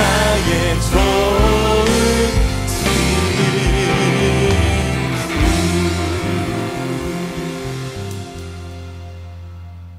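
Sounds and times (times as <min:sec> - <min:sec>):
low bass notes: 0:00.0 - 0:09.9
worship band music: 0:00.0 - 0:09.9.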